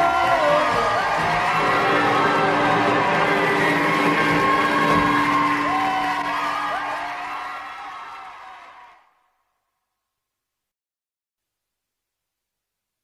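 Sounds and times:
rock and roll band playing: 0.0 - 6.9.

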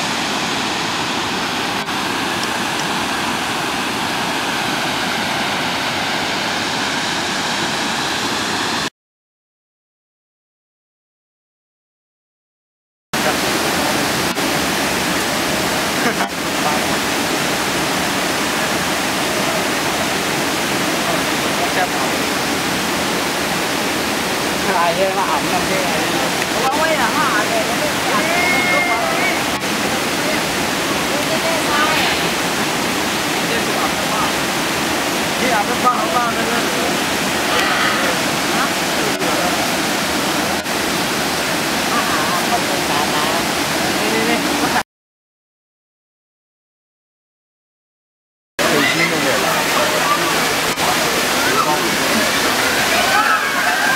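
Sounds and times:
waterfall rushing: 0.0 - 8.9, 13.2 - 44.8, 48.6 - 53.9
faint people talking: 48.6 - 53.9.

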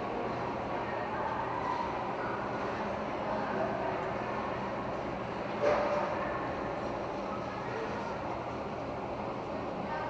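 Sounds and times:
ice rink hall hum: 0.0 - 10.0.

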